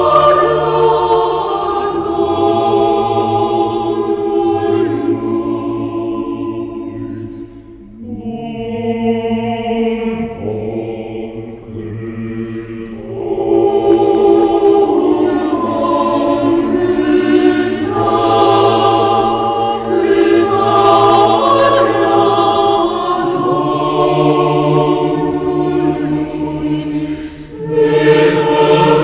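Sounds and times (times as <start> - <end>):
choir singing a hymn a cappella: 0.0 - 29.0.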